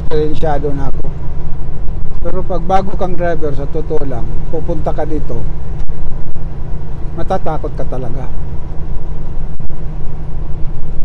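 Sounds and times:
diesel truck engine rumble: 0:00.0 - 0:11.0
road noise: 0:00.0 - 0:11.0.

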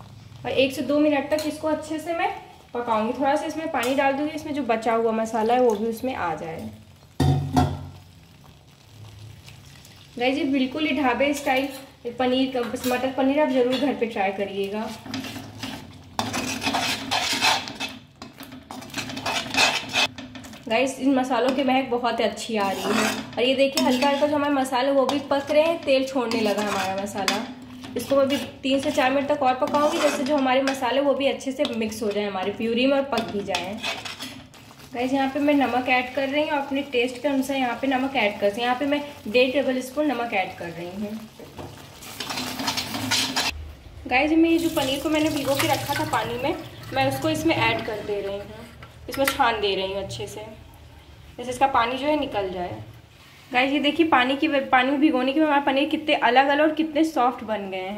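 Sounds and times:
soft sizzle: 0:00.0 - 0:57.9
metal spatula scraping metal pan: 0:01.2 - 0:01.7, 0:11.3 - 0:12.0, 0:12.6 - 0:14.1, 0:14.7 - 0:20.6, 0:22.4 - 0:31.0, 0:33.0 - 0:38.4, 0:42.0 - 0:43.6, 0:44.8 - 0:49.6.

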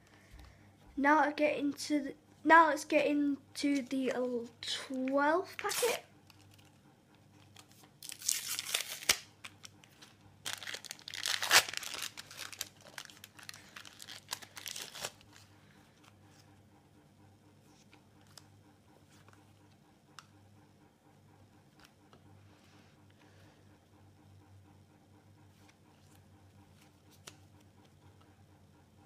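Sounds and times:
wrapper tearing and crinkling: 0:05.6 - 0:06.7, 0:08.0 - 0:15.4.

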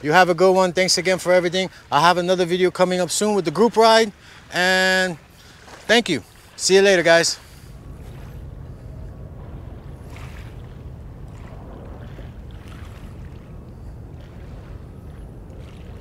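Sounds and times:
small waves lapping: 0:00.0 - 0:16.0
wind rumble on microphone: 0:05.2 - 0:16.0.

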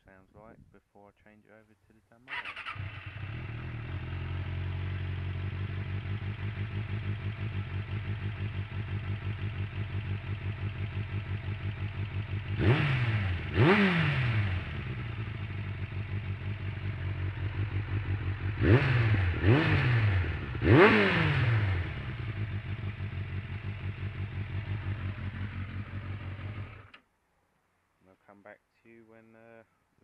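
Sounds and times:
motorcycle engine idling and revving: 0:02.3 - 0:27.0.

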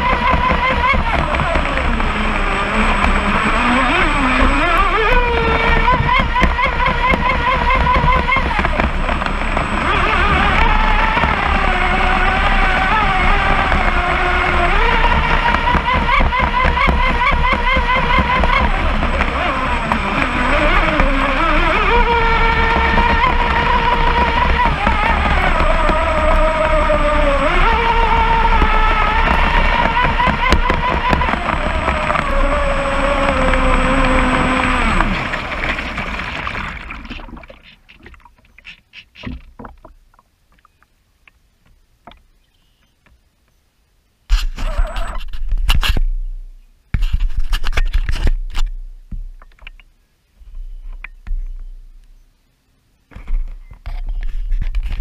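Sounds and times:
electric motor whining: 0:00.0 - 0:37.6
water splashing and lapping: 0:00.0 - 0:41.4
water rushing along hull: 0:00.0 - 0:42.4.

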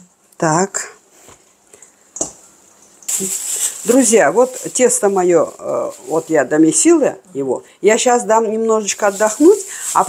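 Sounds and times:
woman speaking: 0:00.4 - 0:01.0, 0:03.2 - 0:10.0
steady hiss: 0:01.0 - 0:07.0, 0:08.9 - 0:10.0
hands kneading dough in bowl: 0:08.8 - 0:10.0.

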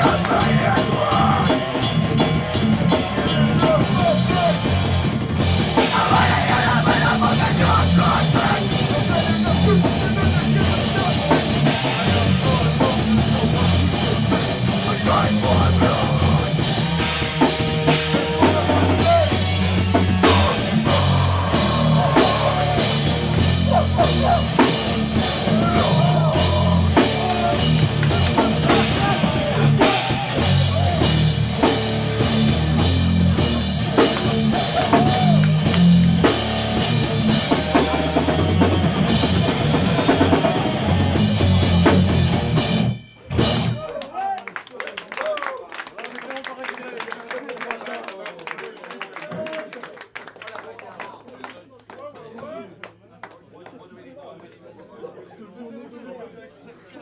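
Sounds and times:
distorted guitar and bass: 0:00.0 - 0:43.8
pounding drum kit: 0:00.0 - 0:44.1
shouted vocals: 0:03.2 - 0:04.9, 0:05.8 - 0:13.8, 0:18.4 - 0:31.7, 0:34.0 - 0:36.0, 0:43.6 - 0:45.6.

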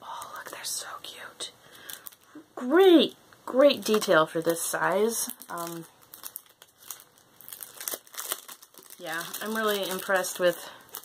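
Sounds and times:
packaging crinkling: 0:01.8 - 0:02.4, 0:03.8 - 0:11.0.

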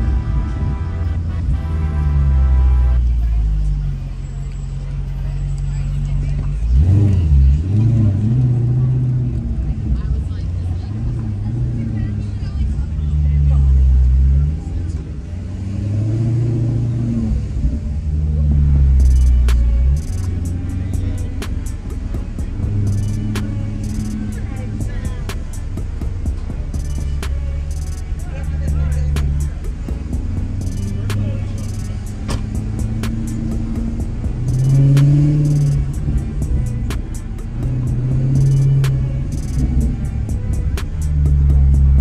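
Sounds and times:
car engine running: 0:00.0 - 0:42.0
music with deep bass: 0:00.0 - 0:42.0
sharp ticks: 0:19.0 - 0:20.5, 0:22.9 - 0:24.2, 0:26.8 - 0:28.1, 0:30.6 - 0:36.2, 0:38.4 - 0:39.9.

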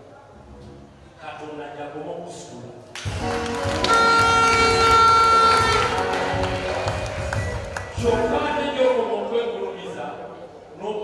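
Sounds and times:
long held high note: 0:03.2 - 0:08.7.

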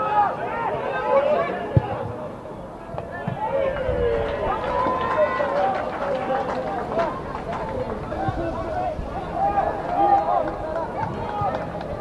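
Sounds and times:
long drawn-out shout: 0:00.0 - 0:02.0, 0:03.1 - 0:06.3, 0:08.1 - 0:12.0
people shouting outdoors: 0:00.0 - 0:02.1, 0:02.8 - 0:07.2, 0:08.0 - 0:12.0.

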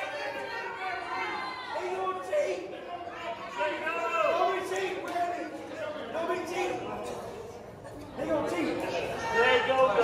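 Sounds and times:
audience chatter: 0:00.0 - 0:10.0.

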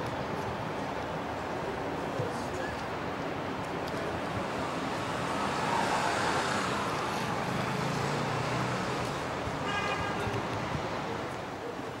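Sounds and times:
city street traffic: 0:00.0 - 0:12.0
vehicle engine passing: 0:04.6 - 0:09.2.

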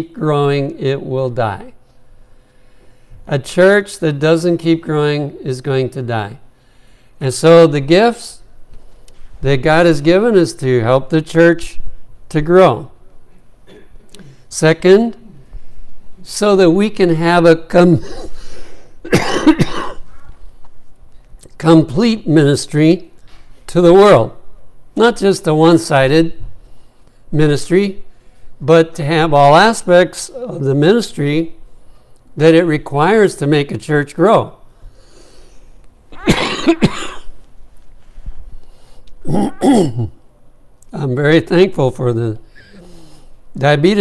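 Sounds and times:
man coughing: 0:13.6 - 0:14.4, 0:18.0 - 0:18.4, 0:19.0 - 0:20.2, 0:36.2 - 0:37.3, 0:39.2 - 0:40.2.

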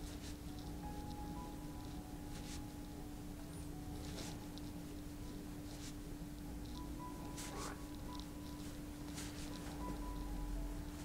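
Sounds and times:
soft fabric rustle: 0:00.0 - 0:01.2, 0:01.8 - 0:03.0, 0:03.6 - 0:11.0
steady low hum: 0:00.0 - 0:11.0.

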